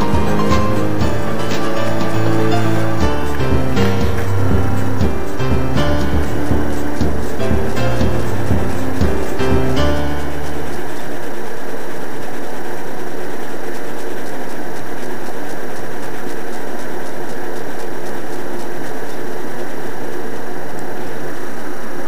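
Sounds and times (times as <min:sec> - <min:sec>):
loud steady hiss: 0:00.0 - 0:15.3.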